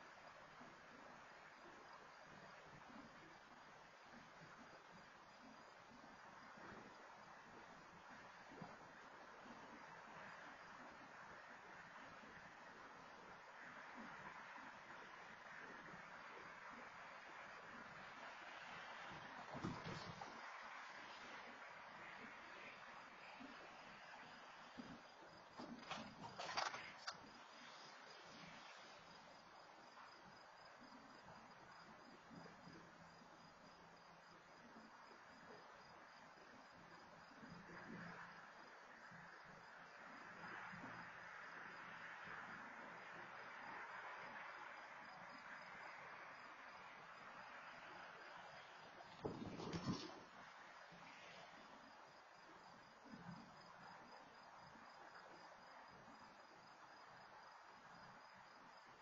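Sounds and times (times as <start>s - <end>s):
cricket chirping: 0.0s - 59.0s
faint low hum: 0.0s - 59.0s
low hiss: 0.0s - 59.0s.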